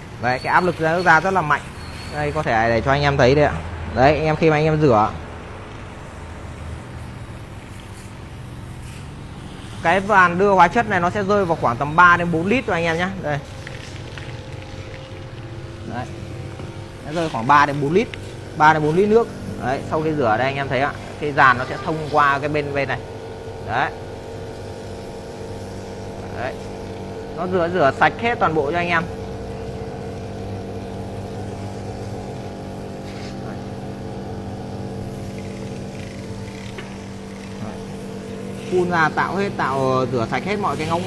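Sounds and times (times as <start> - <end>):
electric pump humming: 0.0 - 41.0
high pressure spray: 6.8 - 13.9, 15.9 - 23.0, 31.0 - 34.2, 34.8 - 41.0.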